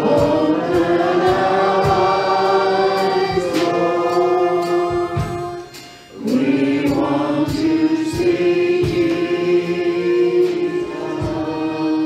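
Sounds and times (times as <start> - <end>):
group singing worship song: 0.0 - 12.0
instrumental accompaniment: 0.0 - 12.0.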